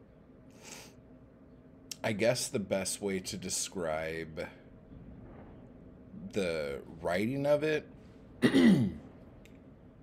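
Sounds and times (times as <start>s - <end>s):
man clearing his throat: 8.4s - 9.1s.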